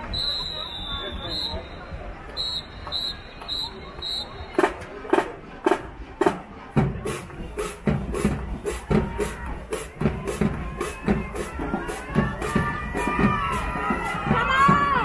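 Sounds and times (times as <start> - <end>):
drumline playing: 2.4 - 15.0
low booming drum: 6.2 - 15.0
crowd cheering and shouting: 8.4 - 15.0.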